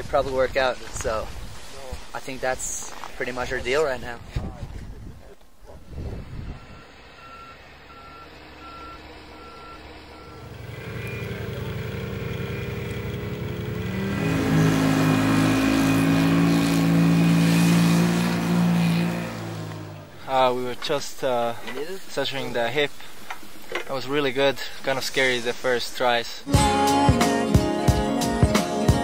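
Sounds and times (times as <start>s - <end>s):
snowmobile engine revving: 6.2s - 20.7s
reversing alarm beeping: 6.5s - 11.4s.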